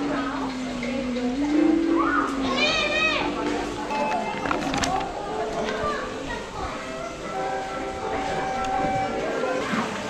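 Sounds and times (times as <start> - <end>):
children's voices: 0.0 - 10.0.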